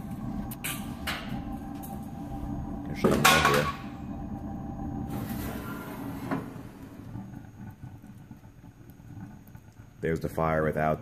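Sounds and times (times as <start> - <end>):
oil burner low rumble: 0.0 - 11.0.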